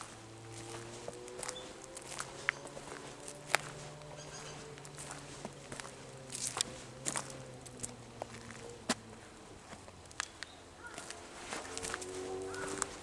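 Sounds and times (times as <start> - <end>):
footsteps on dry leaves and twigs: 0.0 - 13.0.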